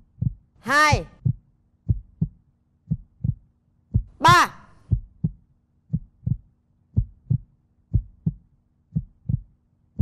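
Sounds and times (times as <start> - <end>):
faint steady hum: 0.0 - 10.0
heartbeat double thump: 0.1 - 0.5, 1.2 - 10.0.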